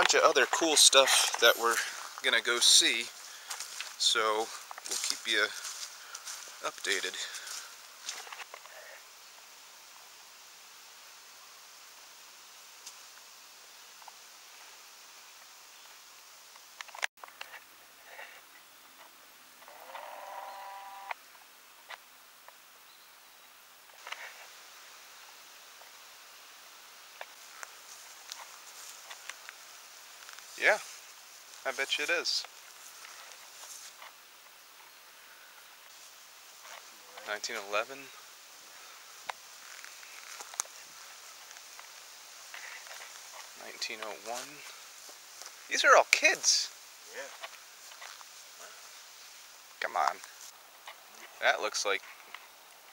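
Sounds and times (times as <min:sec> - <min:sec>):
faint steady hiss: 0:00.0 - 0:52.9.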